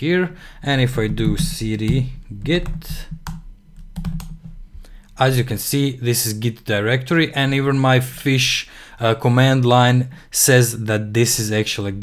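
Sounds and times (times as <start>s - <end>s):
computer keyboard key presses: 2.6s - 4.5s.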